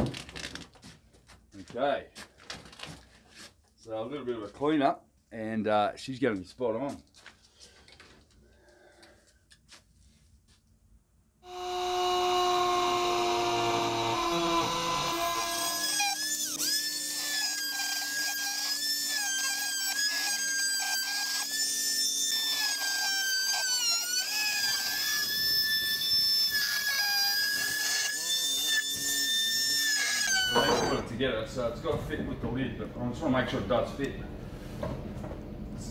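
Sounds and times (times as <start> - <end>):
high-speed power tool whine: 11.4 - 31.1.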